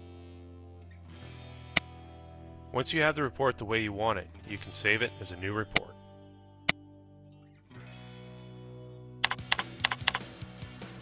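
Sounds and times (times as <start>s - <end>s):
background music: 0.0s - 11.0s
typing on a computer keyboard: 9.2s - 10.3s.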